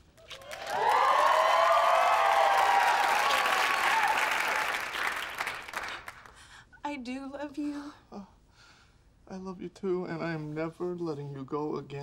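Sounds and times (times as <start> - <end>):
studio audience applauding and cheering: 0.1 - 6.3.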